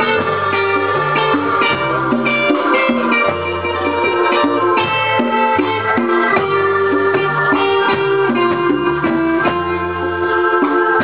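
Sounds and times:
conga drums: 0.0s - 11.0s
latin band playing: 0.0s - 11.0s.

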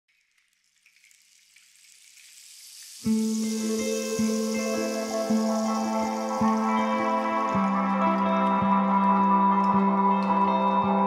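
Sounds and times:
faint hiss: 0.9s - 7.8s.

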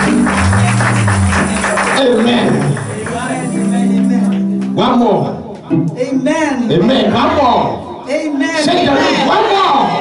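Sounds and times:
deep bass line: 0.0s - 4.1s
fast percussion beat: 0.0s - 4.2s
gospel band playing: 0.0s - 7.9s.

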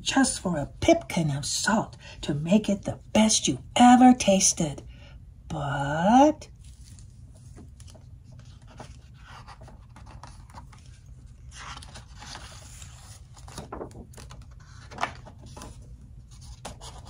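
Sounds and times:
low steady hum: 0.0s - 17.0s
rustling and handling noise: 6.5s - 16.9s
paper page turning: 6.5s - 17.0s.

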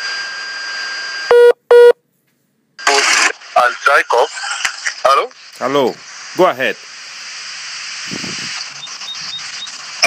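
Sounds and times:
phone line hiss: 8.2s - 10.0s.

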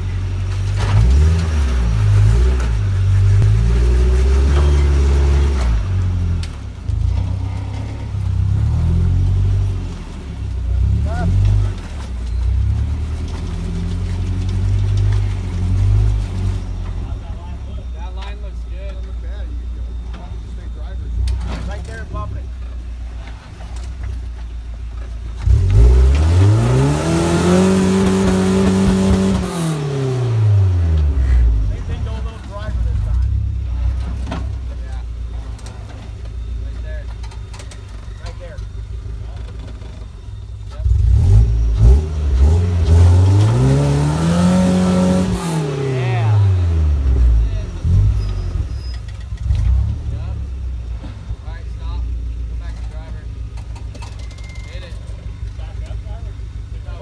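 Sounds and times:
truck engine revving: 0.0s - 24.2s, 25.0s - 57.0s.

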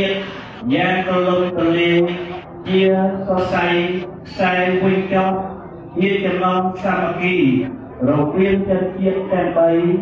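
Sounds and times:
man chanting through loudspeaker: 0.0s - 10.0s.

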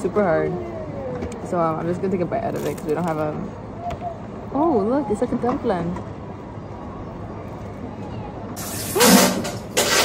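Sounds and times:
airport terminal hum: 0.0s - 10.0s.

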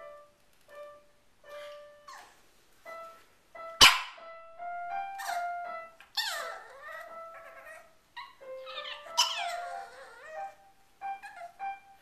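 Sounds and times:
piano notes: 0.0s - 12.0s
dog yowling: 5.2s - 11.9s.

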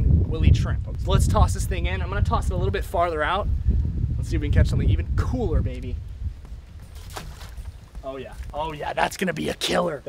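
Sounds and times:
wind rumble on microphone: 0.0s - 9.2s.

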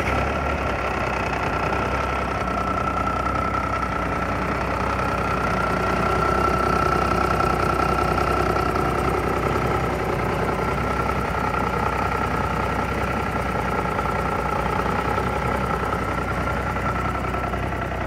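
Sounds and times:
diesel engine idling: 0.0s - 18.0s.

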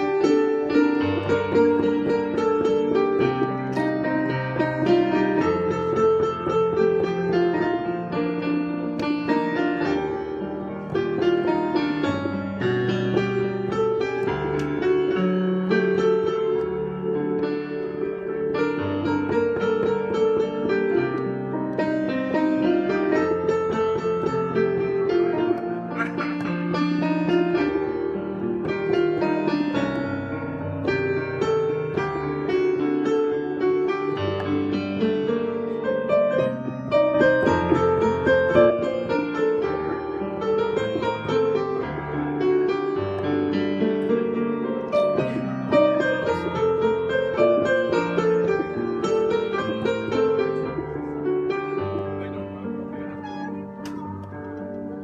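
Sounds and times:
digital piano melody: 0.0s - 55.0s.

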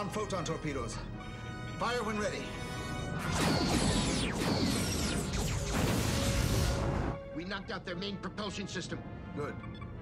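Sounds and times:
dramatic orchestral music: 0.0s - 10.0s
explosion: 3.3s - 7.2s.

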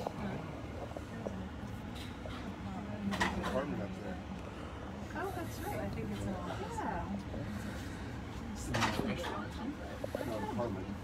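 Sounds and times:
murmured voices: 0.0s - 11.0s.

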